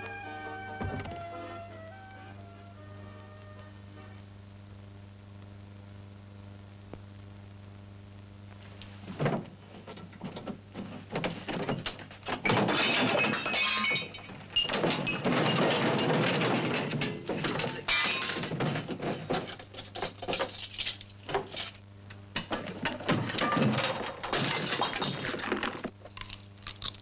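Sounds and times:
steady mains hum: 0.0s - 27.0s
knocks thuds and clattering: 0.8s - 1.4s, 9.1s - 20.6s, 22.4s - 25.9s.

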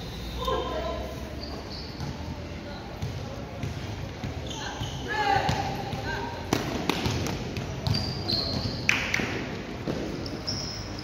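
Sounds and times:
basketballs bouncing on gym floor: 1.4s - 11.0s.

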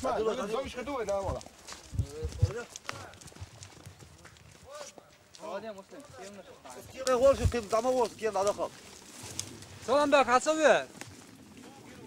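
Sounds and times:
horse hooves on snowy dirt: 0.0s - 12.0s.

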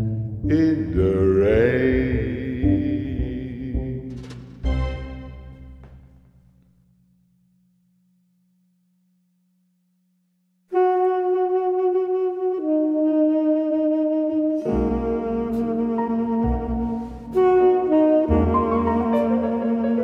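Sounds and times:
bass: 0.0s - 6.6s, 14.6s - 20.0s
big band horns: 14.6s - 20.0s.

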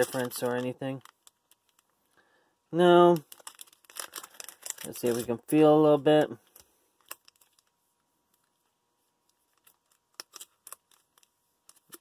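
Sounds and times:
foil packs crinkling: 0.0s - 1.8s, 3.0s - 5.4s, 7.0s - 7.7s, 9.6s - 12.0s.

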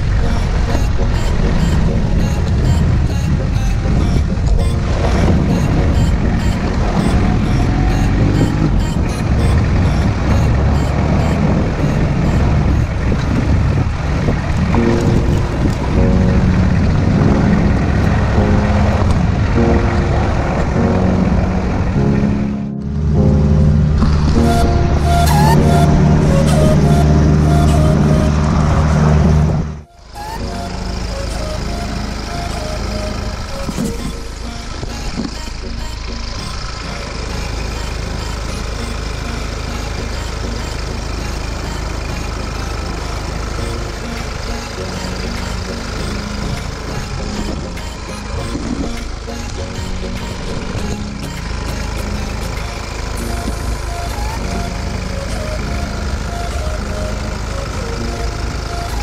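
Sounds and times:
car engine idling: 0.0s - 59.0s
music: 0.0s - 59.0s.

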